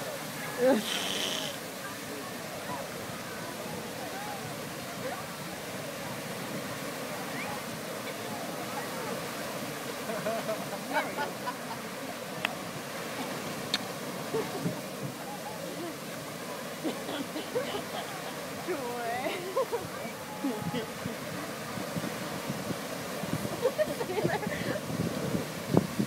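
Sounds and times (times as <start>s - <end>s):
geyser water and steam rushing: 0.0s - 26.0s
murmur of voices: 0.0s - 26.0s.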